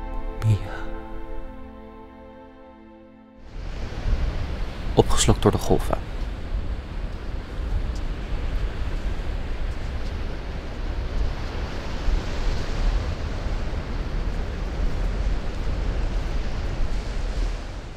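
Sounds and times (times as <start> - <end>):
wind: 3.4 - 17.9
ocean surf washing onto beach: 3.5 - 17.9.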